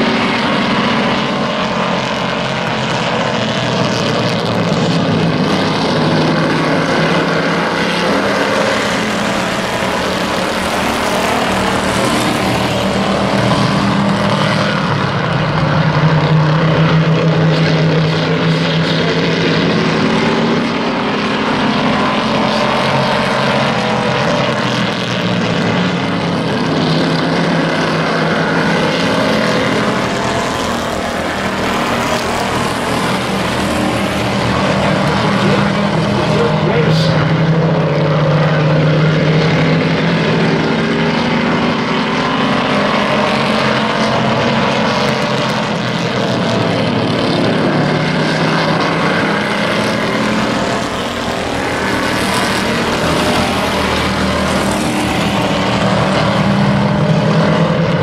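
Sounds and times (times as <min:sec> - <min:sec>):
race car engines droning: 0:00.0 - 0:58.0.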